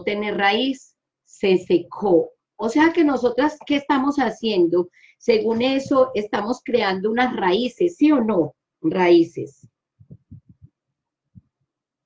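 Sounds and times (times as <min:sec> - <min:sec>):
soft low thumps: 0:09.6 - 0:11.6.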